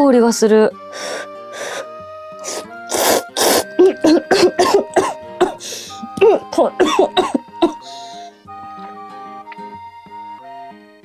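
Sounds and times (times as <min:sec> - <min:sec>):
background music: 0:00.0 - 0:11.0
woman slurping noodles: 0:02.4 - 0:04.7
woman coughing and spluttering: 0:03.4 - 0:07.8.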